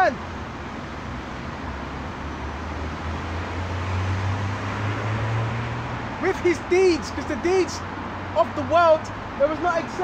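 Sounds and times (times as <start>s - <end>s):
passing vehicle engine hum: 0.0s - 10.0s
traffic hiss: 0.0s - 10.0s.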